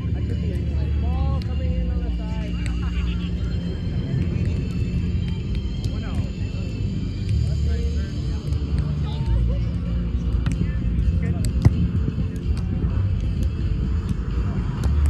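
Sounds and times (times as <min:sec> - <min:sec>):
steady low rumble: 0:00.0 - 0:15.0.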